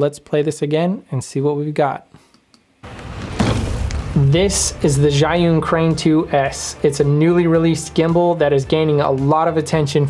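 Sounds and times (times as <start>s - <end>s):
whoosh with deep low end: 2.8s - 7.0s.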